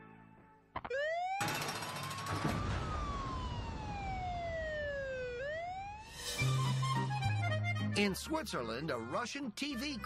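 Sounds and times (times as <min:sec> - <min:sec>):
siren wailing: 0:00.8 - 0:06.2.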